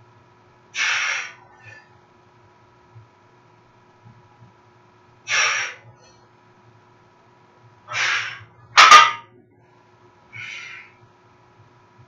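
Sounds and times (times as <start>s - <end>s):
barbell set down with metal clank: 8.8s - 9.3s.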